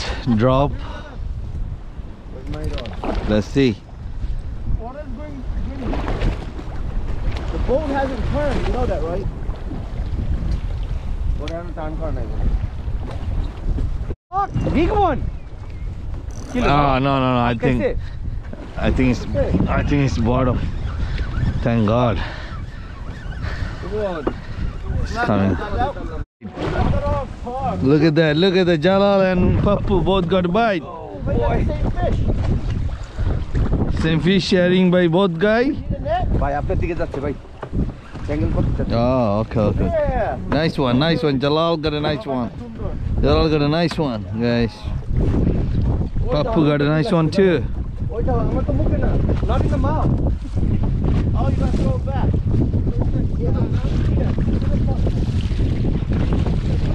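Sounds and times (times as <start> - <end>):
wind buffeting microphone: 0.0 - 56.9.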